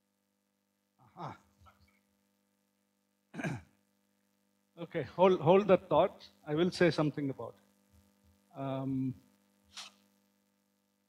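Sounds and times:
faint steady hum: 0.0 - 11.0
person sighing: 1.1 - 1.4.

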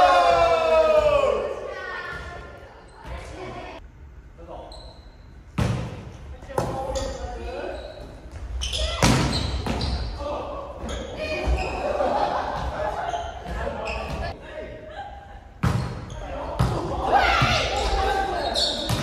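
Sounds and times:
players calling out: 16.1 - 19.0.

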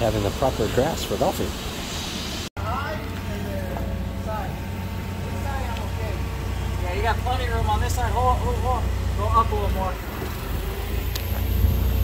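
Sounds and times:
forklift engine rumbling: 2.6 - 12.0.

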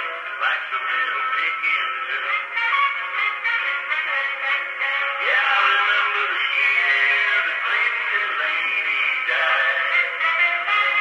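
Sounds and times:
country music from phonograph: 0.0 - 11.0.

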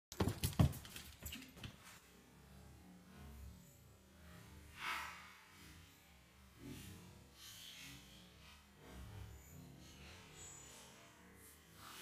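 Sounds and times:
dog paws thudding on wooden floor: 0.1 - 1.8.

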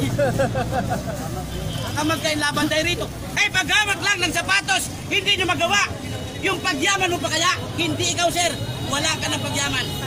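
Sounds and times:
city traffic rumble: 0.0 - 10.0
man speaking: 1.9 - 10.0.

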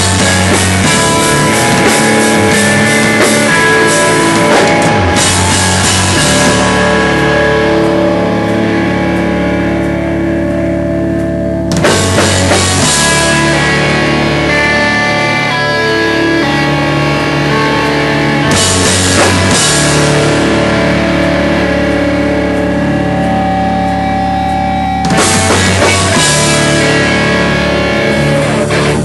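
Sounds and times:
distorted electric guitars: 0.0 - 29.0
drum kit and cymbals: 0.0 - 29.0.

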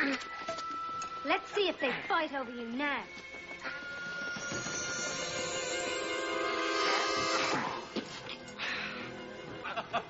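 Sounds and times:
sustained chord with high shimmer: 0.0 - 9.4.

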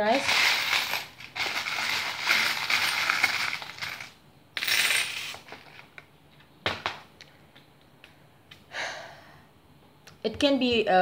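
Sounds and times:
metal charms rattling in plastic box: 0.0 - 5.8
charms clattering onto tabletop: 0.0 - 6.0.

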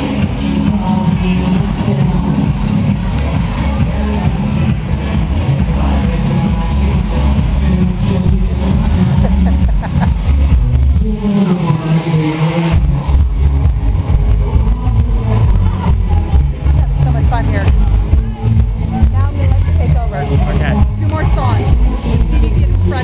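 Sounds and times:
man singing into a microphone: 0.0 - 16.7
electro dance music over speakers: 0.0 - 23.0
heavy bass beat: 0.0 - 23.0.

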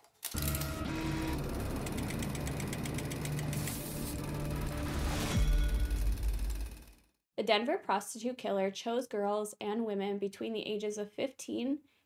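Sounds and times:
film projector clattering: 0.4 - 4.7.

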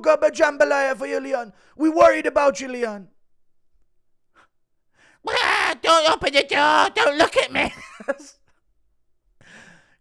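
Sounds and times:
man speaking: 5.2 - 8.3
man laughing: 6.7 - 8.5.

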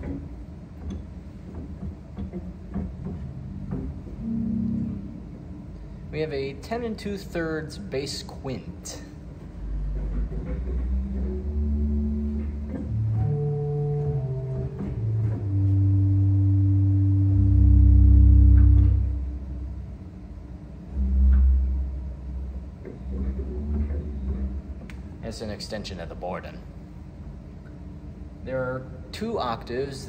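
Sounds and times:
low pipe organ notes: 3.1 - 5.8, 9.6 - 25.2.

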